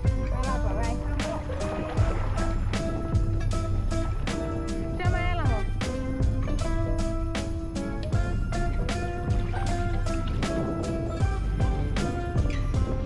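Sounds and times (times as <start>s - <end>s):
background music with drum beat: 0.0s - 13.0s.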